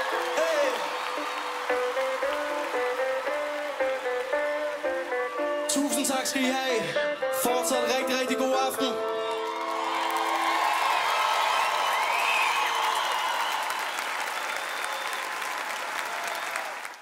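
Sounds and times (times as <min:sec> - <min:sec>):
audience applauding: 0:00.0 - 0:06.3, 0:09.0 - 0:17.0.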